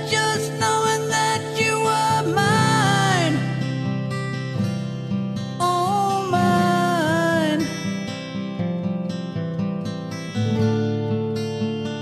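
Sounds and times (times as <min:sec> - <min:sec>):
person singing wordlessly: 0:00.0 - 0:03.6, 0:05.6 - 0:07.8
acoustic guitar strumming: 0:00.0 - 0:12.0.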